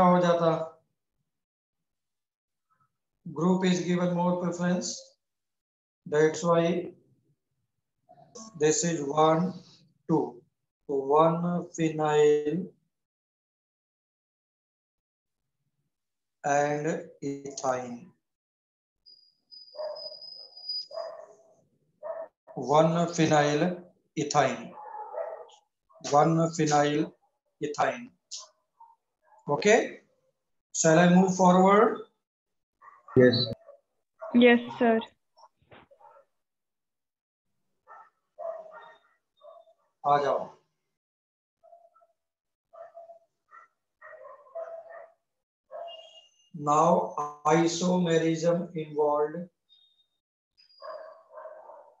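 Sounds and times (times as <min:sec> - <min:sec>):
teacher talking: 0:33.2 - 0:33.6, 0:34.4 - 0:35.0.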